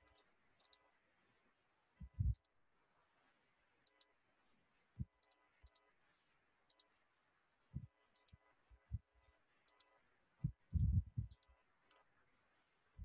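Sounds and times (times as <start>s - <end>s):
soft low thumps: 2.0s - 2.4s, 10.4s - 11.4s.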